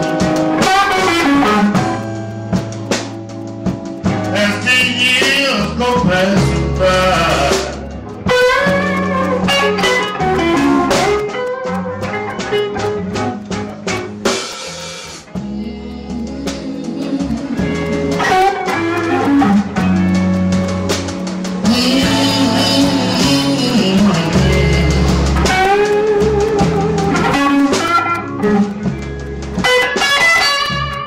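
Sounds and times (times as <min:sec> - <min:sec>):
lead guitar: 0:00.0 - 0:31.0
slow blues band playing: 0:00.0 - 0:31.0.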